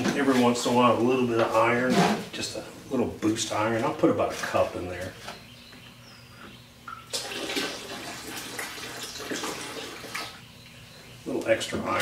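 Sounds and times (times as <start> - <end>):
liquid pouring into water: 7.1 - 10.3.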